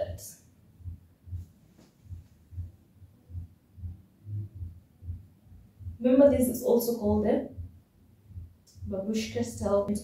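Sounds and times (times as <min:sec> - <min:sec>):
soft low thumps: 0:00.0 - 0:10.0.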